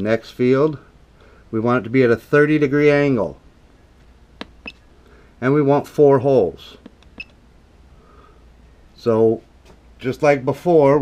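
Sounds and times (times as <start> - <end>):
faint low steady hum: 0.0 - 11.0.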